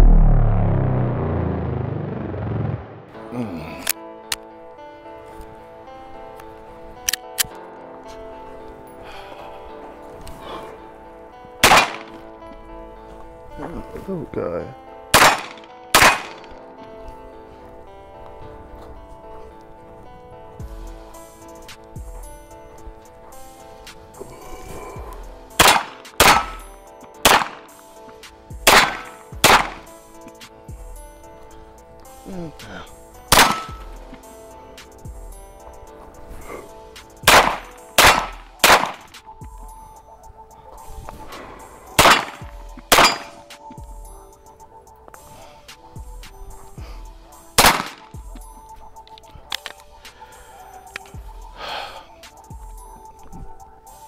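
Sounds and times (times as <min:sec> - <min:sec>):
deep rumbling falling pitch effect: 0:00.0 - 0:03.2
background music: 0:00.0 - 0:54.0
pistol shots: 0:11.6 - 0:12.2, 0:15.1 - 0:16.6, 0:25.6 - 0:27.8, 0:28.6 - 0:29.9, 0:33.3 - 0:33.9, 0:37.3 - 0:39.2, 0:42.0 - 0:43.6, 0:47.6 - 0:48.2.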